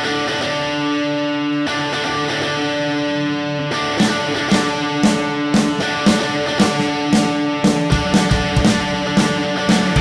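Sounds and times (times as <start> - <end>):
electric guitar chords: 0.0 - 10.0
rock band playing: 0.0 - 10.0
drum beat: 4.0 - 10.0.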